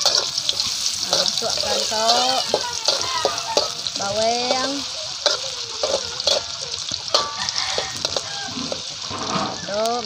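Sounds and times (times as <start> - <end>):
metal spatula scraping a wok: 0.0 - 9.8
shallots sizzling in hot oil: 0.0 - 10.0.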